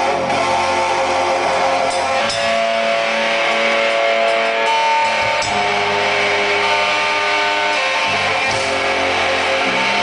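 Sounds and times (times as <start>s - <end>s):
bass guitar: 0.0s - 10.0s
electric guitar chords: 0.0s - 10.0s.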